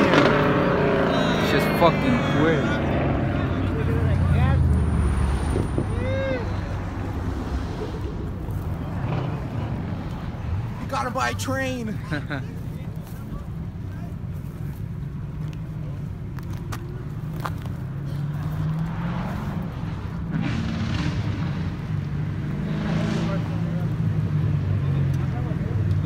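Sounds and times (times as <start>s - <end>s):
traffic rushing by: 0.0s - 26.0s.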